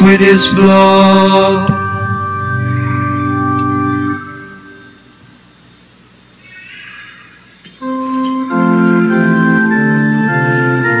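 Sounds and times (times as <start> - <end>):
faint high-pitched whine: 0.0 - 11.0
pipe organ chords: 0.0 - 11.0.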